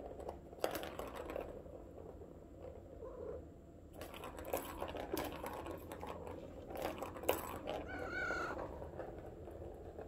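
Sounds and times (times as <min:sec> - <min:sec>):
plastic ball rattling in toy track: 0:00.0 - 0:02.9, 0:03.9 - 0:10.0
cat chirping: 0:07.8 - 0:08.6.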